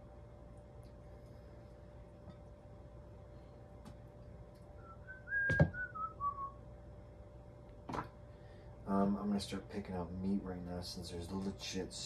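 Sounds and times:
man whistling a tune: 4.8s - 6.6s
sharp knock: 5.4s - 5.8s.

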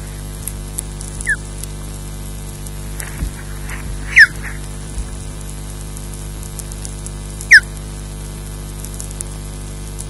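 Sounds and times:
microphone hum and hiss: 0.0s - 10.0s
osprey whistled calls: 1.2s - 1.4s, 3.6s - 4.7s, 7.5s - 7.7s.

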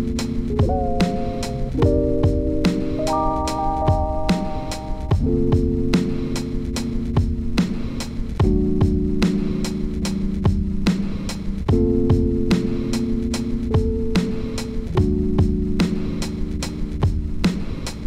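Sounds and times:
drum loop with kick and hi-hats: 0.0s - 18.0s
electric piano chords: 0.0s - 18.0s.

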